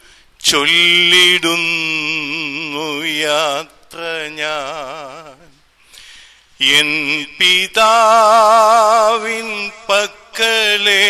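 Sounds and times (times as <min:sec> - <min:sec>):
man singing with vibrato: 0:00.4 - 0:06.0, 0:06.6 - 0:11.0.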